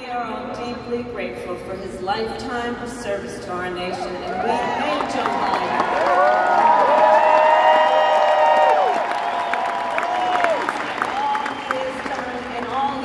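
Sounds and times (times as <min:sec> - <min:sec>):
crowd cheering and shouting: 0:04.0 - 0:13.0
applause: 0:04.9 - 0:13.0.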